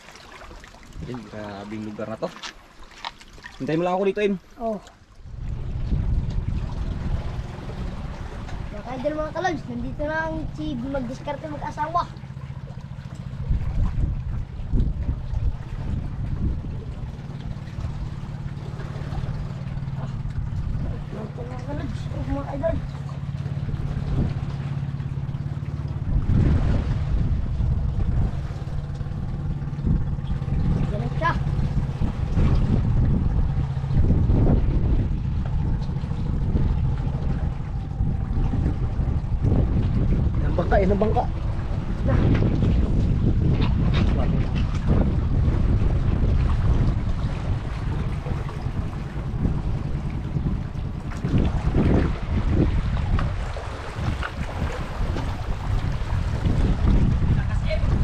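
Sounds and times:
boat engine hum: 0.0s - 58.0s
wind on microphone: 3.7s - 58.0s.

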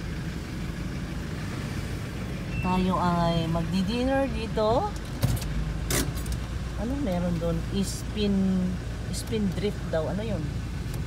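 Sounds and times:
car rumble inside cabin: 0.0s - 11.0s.

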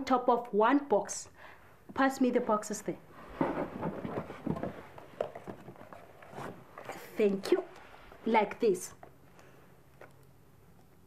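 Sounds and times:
cardboard boxes knocking and scraping: 3.3s - 6.7s.

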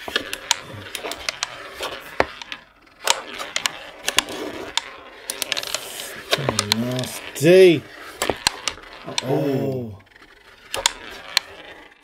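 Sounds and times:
ball clacking off strikers and walls: 0.0s - 12.0s
strikers scraping across board: 0.0s - 12.0s.

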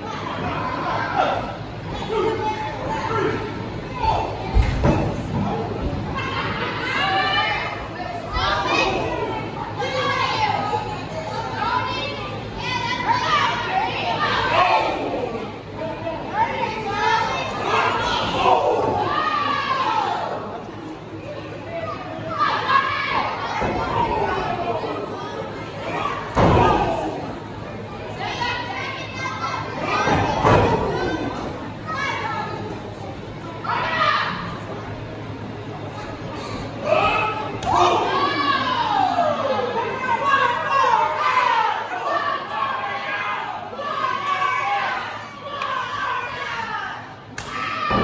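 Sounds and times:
children shouting: 6.1s - 15.4s, 16.3s - 20.5s, 21.7s - 27.4s, 28.1s - 32.7s, 33.6s - 34.6s, 36.3s - 48.0s
spectators shouting: 36.8s - 48.0s.

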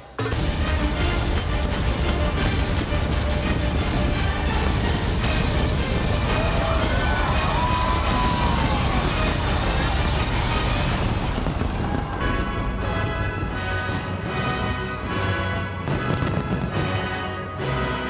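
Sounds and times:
fireworks crackling and booming: 0.2s - 18.0s
firework whistles: 4.5s - 13.2s.

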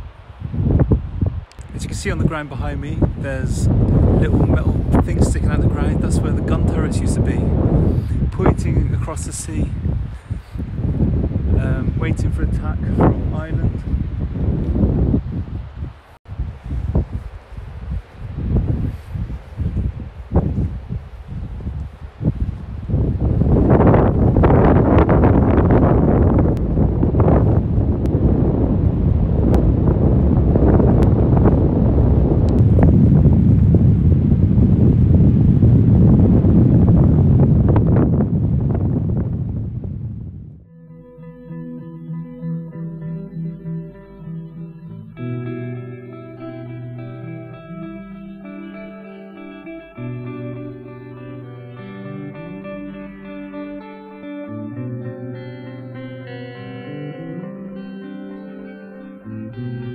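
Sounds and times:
wind buffeting microphone: 0.0s - 40.7s
acoustic guitar music: 40.6s - 59.9s.

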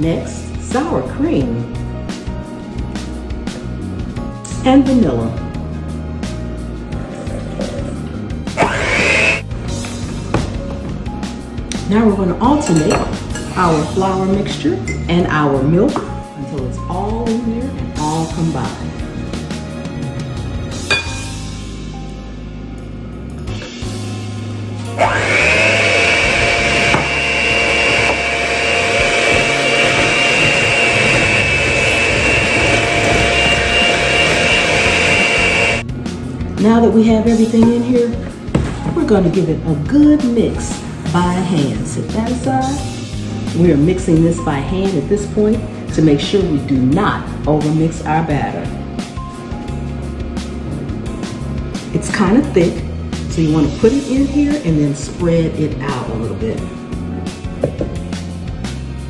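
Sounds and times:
background music: 0.0s - 59.0s
electric hand mixer running: 6.8s - 9.7s, 24.5s - 35.9s.

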